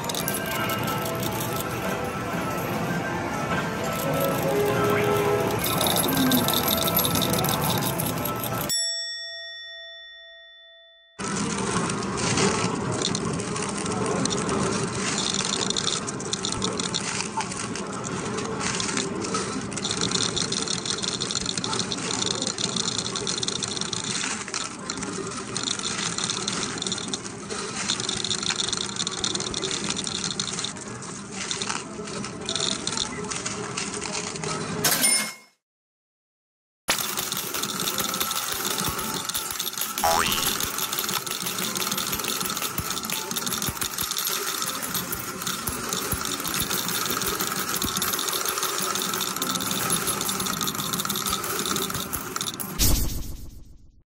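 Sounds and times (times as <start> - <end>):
arcade machine electronic music: 0.0 - 8.7, 36.9 - 52.8
chiming dings: 3.9 - 11.2.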